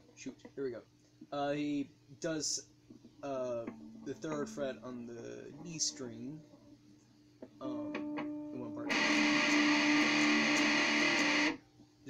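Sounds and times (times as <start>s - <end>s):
electric guitar sustained note: 7.6s - 11.4s.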